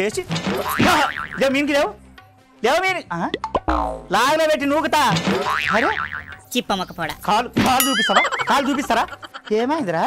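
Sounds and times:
comic boing sound effects: 0:03.4 - 0:04.1, 0:05.3 - 0:06.4, 0:07.8 - 0:08.8.

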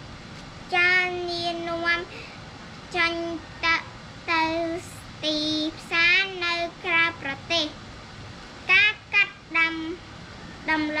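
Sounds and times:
girl reading aloud in chanting voice: 0:00.6 - 0:11.0.

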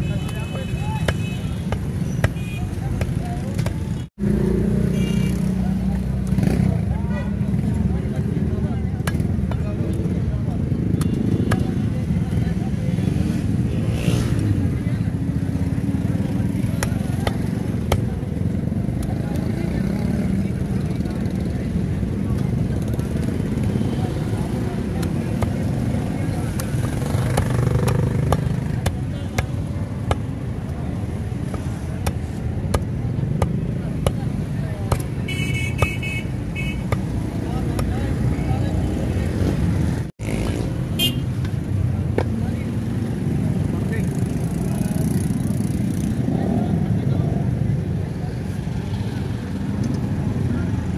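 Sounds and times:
cleaver chopping fish on wood: 0:01.0 - 0:04.0, 0:16.8 - 0:18.1, 0:26.4 - 0:30.4, 0:31.4 - 0:35.2, 0:36.8 - 0:37.9.

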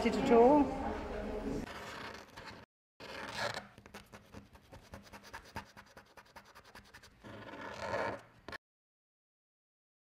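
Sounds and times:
marker scratching on paper: 0:01.7 - 0:08.6.

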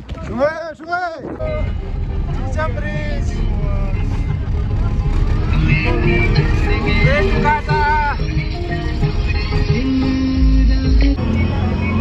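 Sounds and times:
engine and road rumble: 0:00.0 - 0:12.0
voices: 0:00.0 - 0:12.0
music playing: 0:01.3 - 0:12.0.

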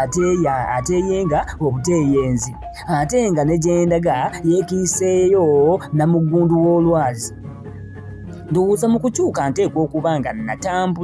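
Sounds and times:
person narrating: 0:00.0 - 0:07.4, 0:08.3 - 0:11.0
background music: 0:00.0 - 0:11.0.

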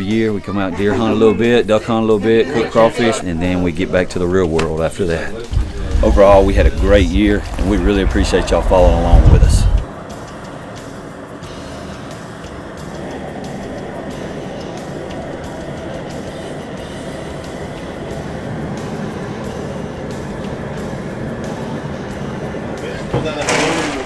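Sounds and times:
background music with steady beat: 0:00.0 - 0:23.7.

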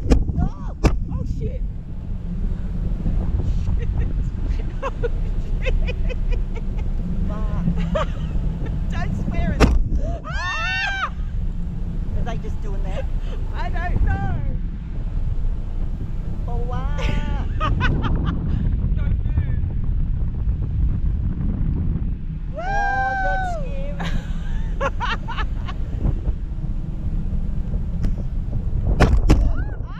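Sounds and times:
motorboat engine rumble: 0:00.0 - 0:29.9
wind on microphone: 0:00.0 - 0:29.9
people's voices: 0:03.4 - 0:08.2.

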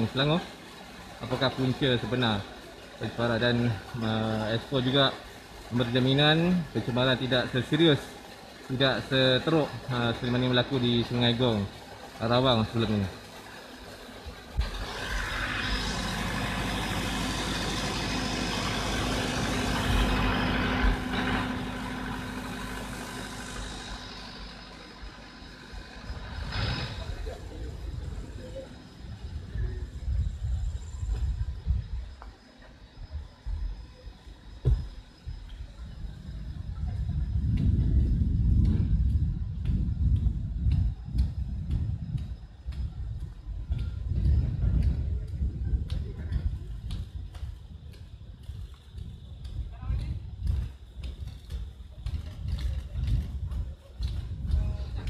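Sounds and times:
truck engine rumbling: 0:00.0 - 0:55.0.

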